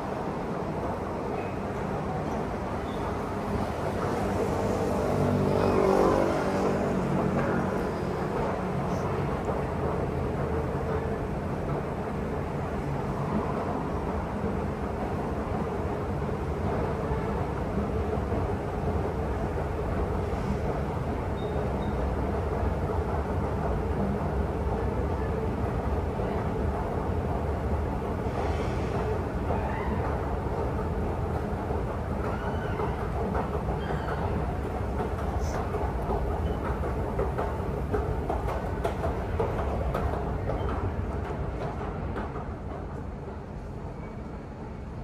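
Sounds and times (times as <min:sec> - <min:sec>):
city traffic: 0:00.0 - 0:45.0.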